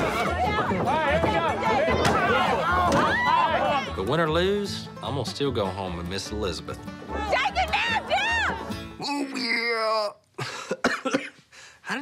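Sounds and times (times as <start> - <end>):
man coughing and clearing throat: 10.4 - 11.5.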